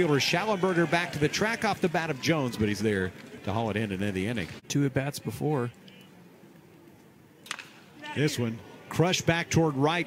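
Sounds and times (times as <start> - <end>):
faint ballpark ambience: 0.0 - 10.0
bat cracking against baseball: 7.4 - 7.8.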